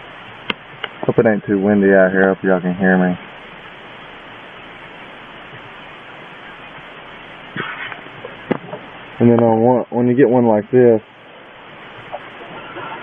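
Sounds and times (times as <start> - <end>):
steady background hiss: 0.0 - 13.0.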